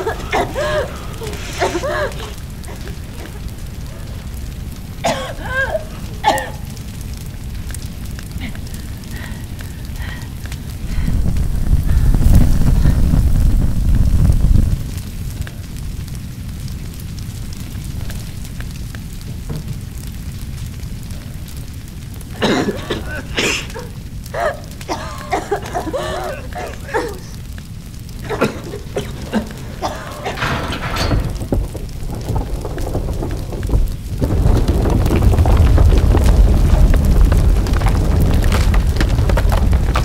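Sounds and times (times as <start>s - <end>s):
woman sobbing: 0.0s - 3.5s, 5.1s - 6.5s, 22.5s - 27.4s, 28.2s - 30.8s
fire roaring and crackling: 0.0s - 40.0s.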